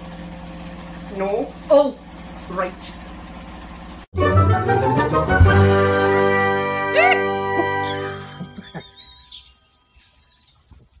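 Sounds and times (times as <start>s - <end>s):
chimed jingle: 5.1s - 9.6s
faint bird chirping: 7.8s - 11.0s.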